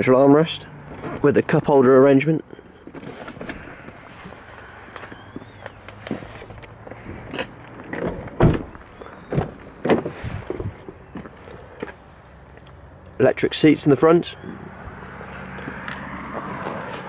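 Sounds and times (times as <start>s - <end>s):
rustling: 2.8s - 12.2s
car doors shutting: 5.0s - 11.9s.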